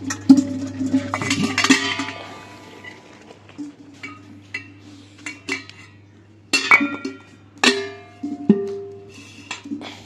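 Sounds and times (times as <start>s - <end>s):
metal pots and lids clinking: 0.0s - 3.0s, 3.6s - 9.8s
metallic ringing: 6.5s - 9.1s.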